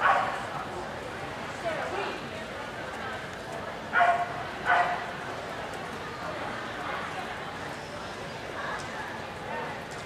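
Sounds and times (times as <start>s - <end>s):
murmur of indoor hall: 0.0s - 10.0s
small dog barking: 4.0s - 5.0s.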